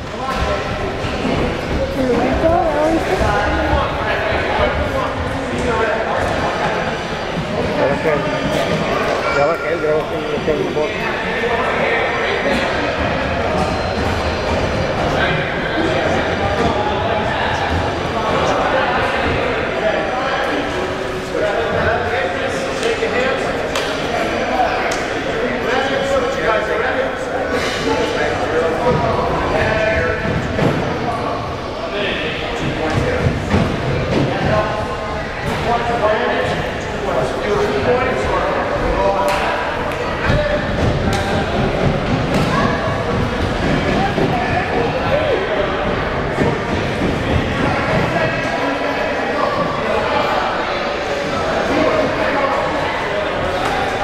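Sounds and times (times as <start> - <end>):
many voices talking and calling: 0.0 - 54.0.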